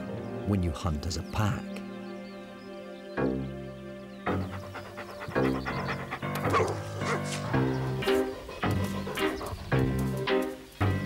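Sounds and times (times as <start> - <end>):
background music: 0.0 - 11.0
dog barking: 4.5 - 9.6.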